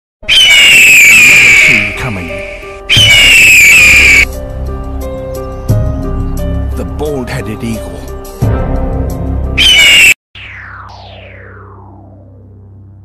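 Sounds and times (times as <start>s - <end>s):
bird of prey screaming: 0.2s - 4.3s, 9.6s - 10.2s
intro music: 1.8s - 13.0s.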